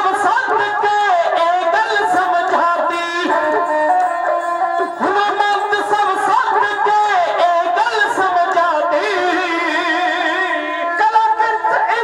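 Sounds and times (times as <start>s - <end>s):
sarangi sliding melody: 0.0s - 12.0s.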